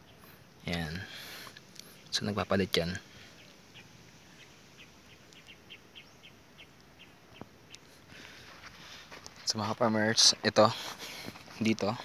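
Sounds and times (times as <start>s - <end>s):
bird chirping faintly: 0.0s - 8.3s.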